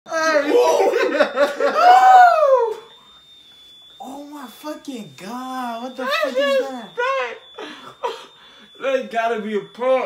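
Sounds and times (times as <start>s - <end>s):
men crying out in disgust: 0.1s - 2.7s
long rising and falling cry: 0.1s - 2.9s
young men laughing: 0.4s - 2.4s, 6.3s - 8.4s.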